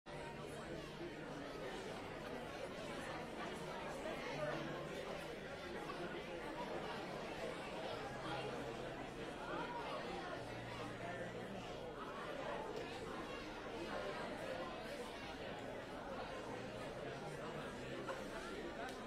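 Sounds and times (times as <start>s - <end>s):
crowd chatting in a large hall: 0.1s - 19.0s.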